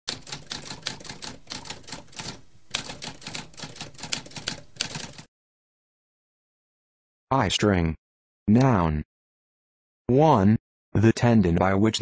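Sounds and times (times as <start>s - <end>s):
typewriter keys clacking: 0.1s - 5.3s.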